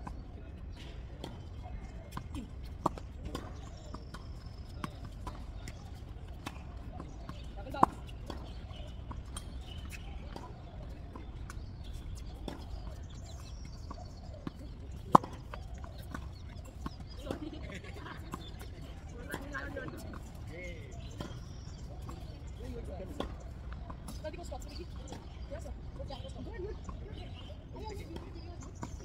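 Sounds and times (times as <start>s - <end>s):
rackets striking tennis ball: 2.2s - 24.2s.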